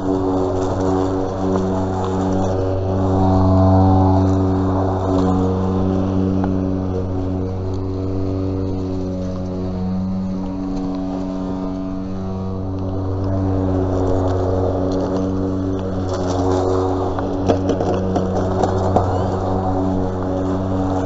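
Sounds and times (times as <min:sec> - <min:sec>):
motor drone with low hum: 0:00.0 - 0:21.0.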